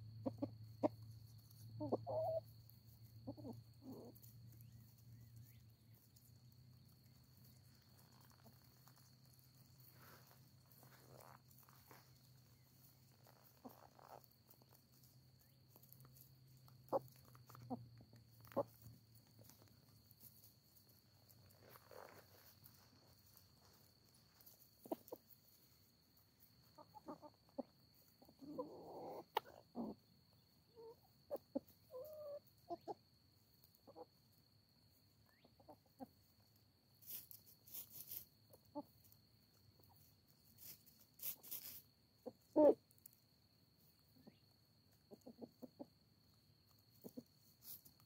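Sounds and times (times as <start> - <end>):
hens clucking: 0.0 - 34.4, 35.1 - 39.0, 39.7 - 43.1, 43.8 - 48.0.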